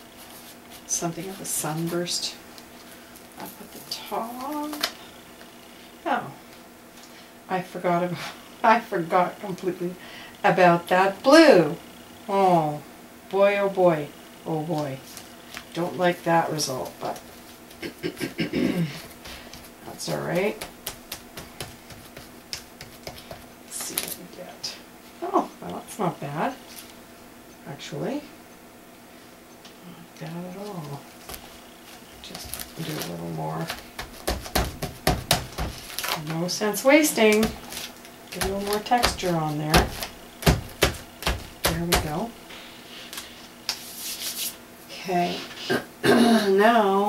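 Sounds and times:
scrubbing on paper: 0:19.0 - 0:23.5, 0:37.4 - 0:44.6
plastic stencil tapping on paper: 0:20.4 - 0:23.5, 0:33.7 - 0:35.8.

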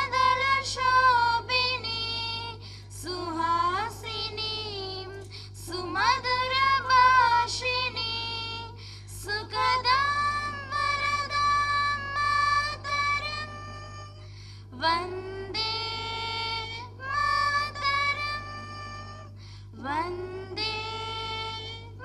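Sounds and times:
person singing slow melody: 0:00.0 - 0:22.0
steady low hum: 0:00.0 - 0:22.0.

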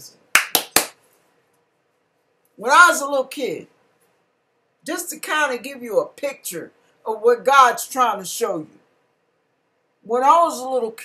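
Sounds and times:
sharp hand claps: 0:00.3 - 0:01.0.

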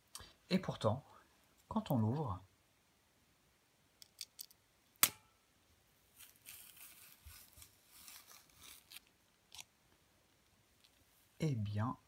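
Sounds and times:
banana stem snapping: 0:04.1 - 0:05.3
banana peel tearing: 0:06.2 - 0:09.8.

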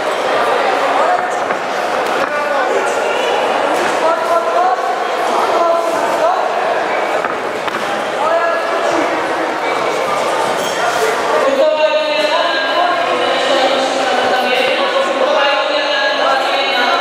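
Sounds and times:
voices calling out in a hall: 0:00.0 - 0:17.0.

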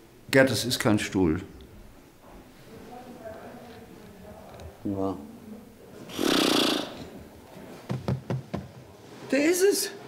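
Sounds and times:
sharp knocks: 0:07.8 - 0:08.8.

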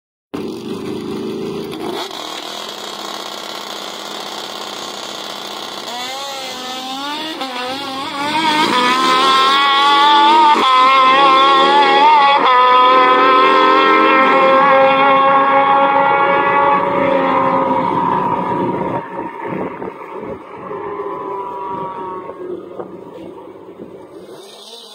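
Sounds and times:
motorcycle engines revving: 0:00.4 - 0:24.9.

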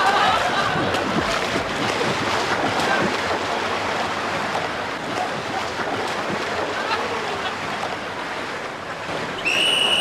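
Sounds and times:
pool water washing: 0:00.0 - 0:10.0
long high whistle blast: 0:09.4 - 0:10.0.

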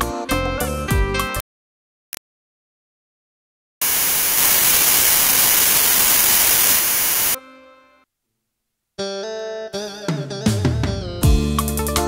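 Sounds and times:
loud static hiss: 0:03.8 - 0:07.4.

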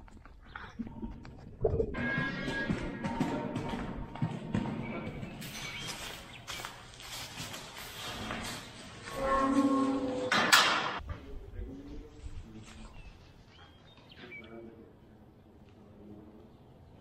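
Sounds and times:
hooves knocking on concrete: 0:00.0 - 0:06.8
metal gates rattling: 0:09.1 - 0:11.0.

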